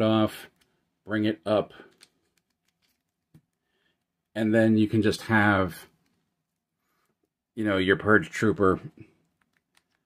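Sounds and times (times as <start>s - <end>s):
plastic toy parts clicking: 9.2s - 10.0s.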